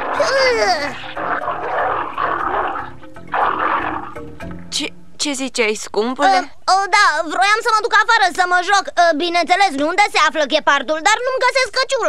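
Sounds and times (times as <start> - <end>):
cartoon big cat growling: 0.0 - 4.4
background music: 0.0 - 6.6.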